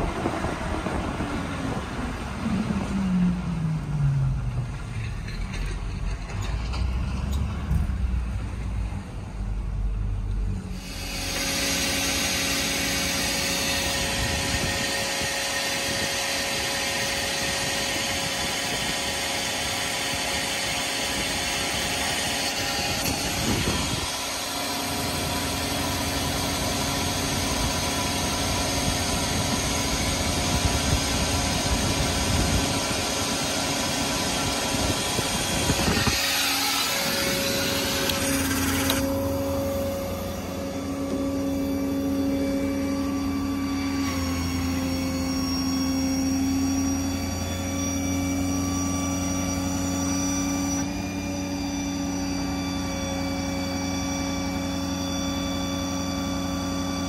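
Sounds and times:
truck engine and hydraulics humming: 0.0 - 57.0.

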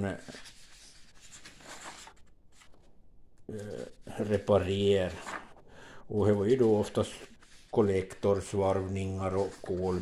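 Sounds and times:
paper sheets rustling: 0.0 - 2.9, 3.5 - 5.6, 6.2 - 10.0.

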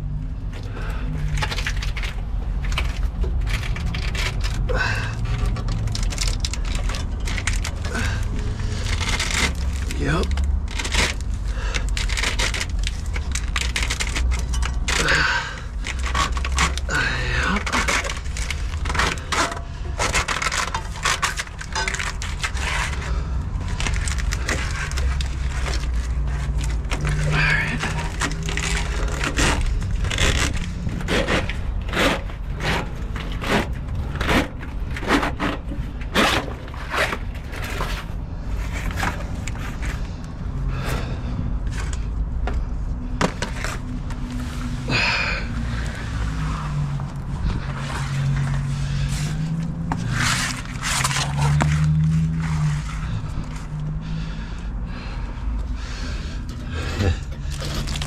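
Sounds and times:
knocks clicks and scrapes of hose: 0.4 - 58.0.

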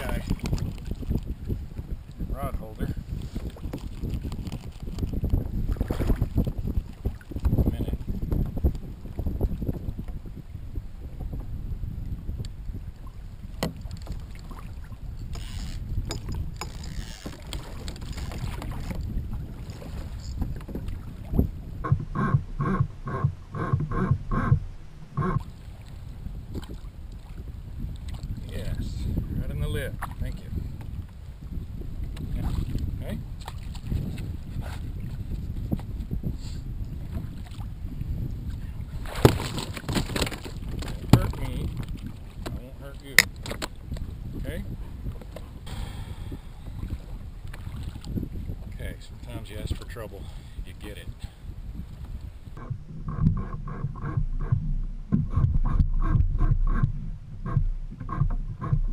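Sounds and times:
water moving around kayak: 0.0 - 58.9
wind buffeting microphone: 0.0 - 58.9.

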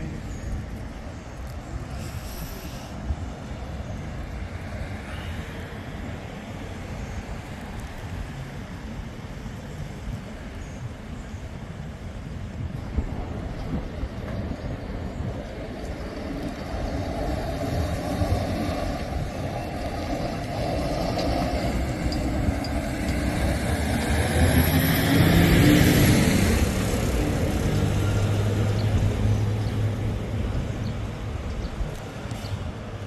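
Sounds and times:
city street traffic: 0.0 - 33.0
low engine hum: 0.0 - 33.0
dump truck passing: 12.7 - 33.0.

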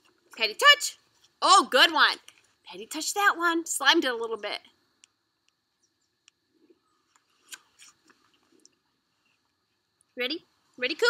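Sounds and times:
faint clicks and ticks: 4.6 - 10.2.

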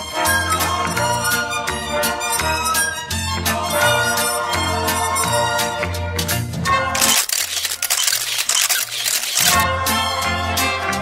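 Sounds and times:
rapid high-pitched clicking and rustling: 7.0 - 9.6.

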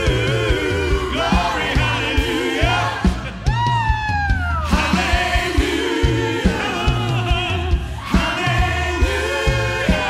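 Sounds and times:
bass: 0.0 - 10.0
drum beat: 0.0 - 10.0
worship band with singers: 0.0 - 10.0.

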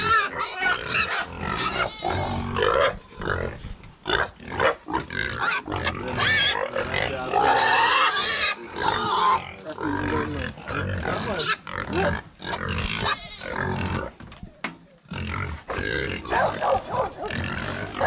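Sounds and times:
pigs squealing and grunting: 0.0 - 18.0.

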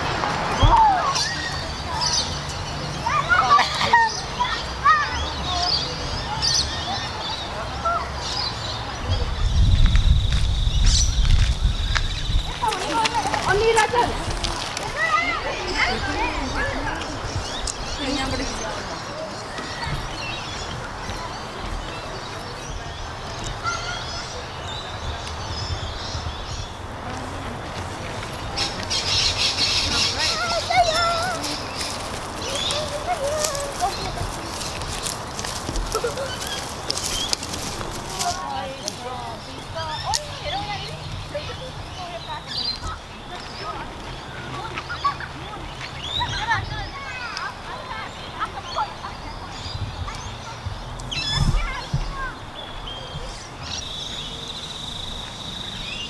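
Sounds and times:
birds calling: 0.0 - 56.0
wind rumble on microphone: 8.8 - 14.9, 49.3 - 53.8
footsteps crunching on leaf litter: 9.6 - 15.8, 27.0 - 46.0.

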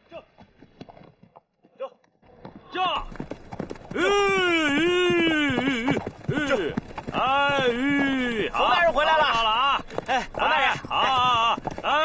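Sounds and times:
horses' hooves clattering: 0.2 - 12.0
rider calling whoa: 4.0 - 9.0
riders shouting giddy-up: 4.0 - 12.0.

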